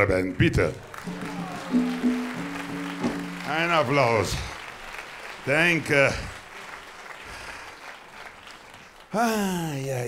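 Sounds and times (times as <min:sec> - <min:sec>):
audience applauding: 0:00.6 - 0:09.8.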